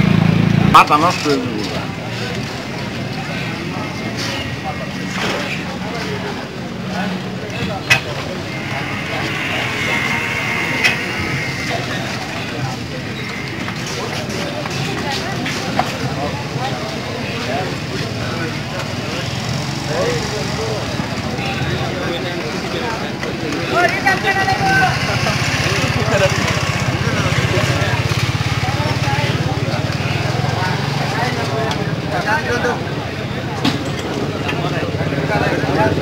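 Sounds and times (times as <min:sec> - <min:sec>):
people talking: 0:00.0 - 0:36.0.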